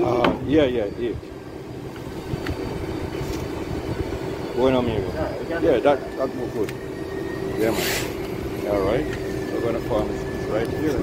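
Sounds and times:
construction machinery engine running: 0.0s - 11.0s.

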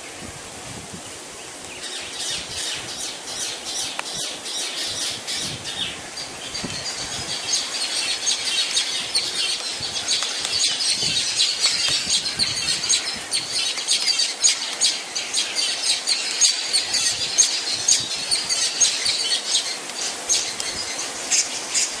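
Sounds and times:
woodpeckers squawking chatter: 1.9s - 22.0s.

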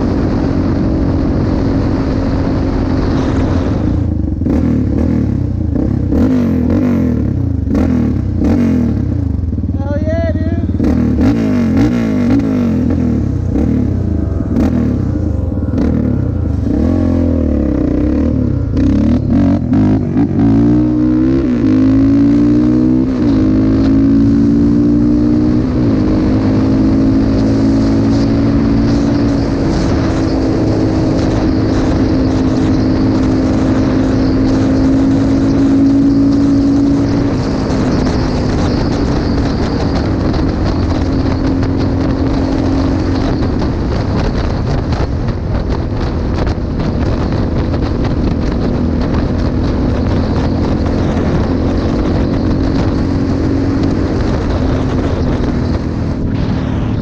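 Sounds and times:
quad bike engine revving: 0.0s - 57.0s.

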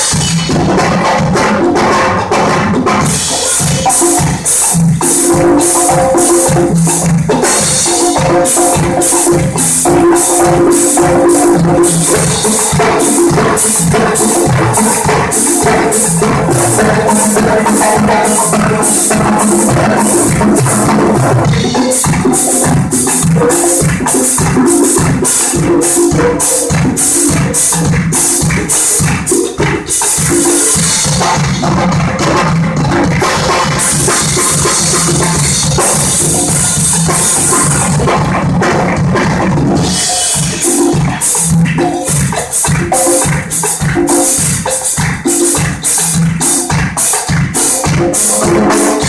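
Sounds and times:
congas and hand percussion: 0.0s - 49.0s
drum kit: 0.0s - 49.0s
tuba bass line: 0.0s - 49.0s
marimba melody: 3.0s - 39.2s.

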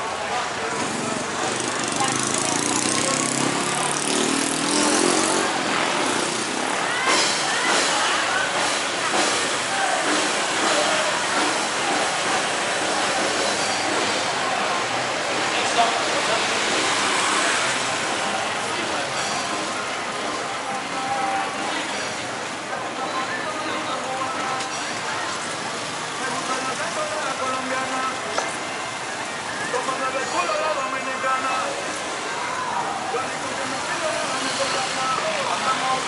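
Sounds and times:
motorbikes passing: 0.0s - 36.0s
people talking: 0.0s - 36.0s.

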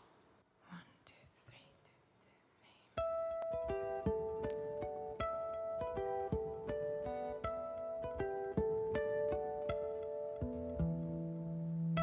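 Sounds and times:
person whispering: 0.6s - 3.0s.

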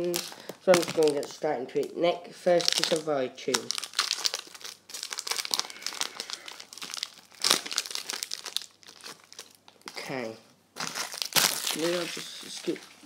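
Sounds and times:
wrapper ripping: 0.0s - 1.9s, 2.5s - 10.2s, 10.8s - 13.0s
foil wrapper crinkling: 0.0s - 10.2s, 10.8s - 13.0s.

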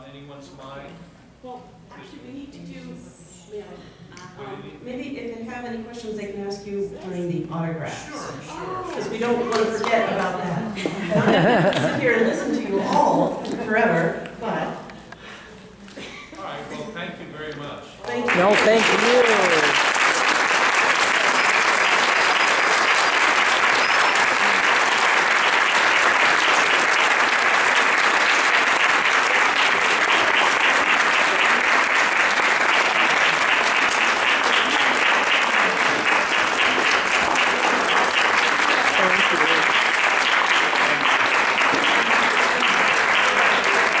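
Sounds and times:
audience applause: 18.2s - 44.0s.

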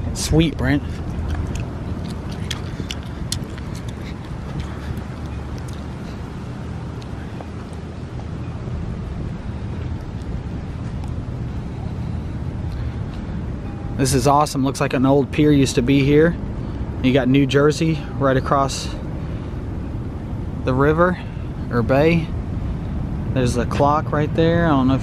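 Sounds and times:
distant city traffic: 0.0s - 25.0s
wind rumble on microphone: 0.0s - 25.0s.

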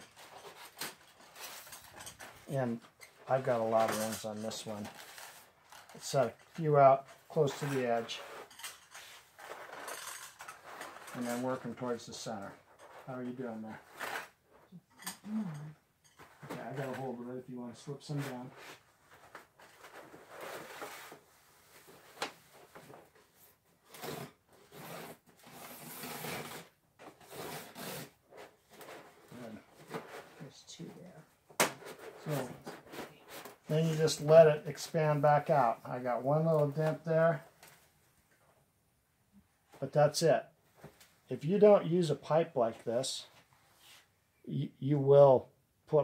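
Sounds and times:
metal ring scraping over sheet: 0.0s - 15.2s.

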